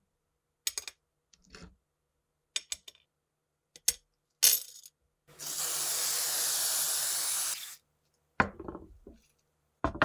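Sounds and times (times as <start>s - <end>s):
aerosol can spraying: 5.4s - 7.8s.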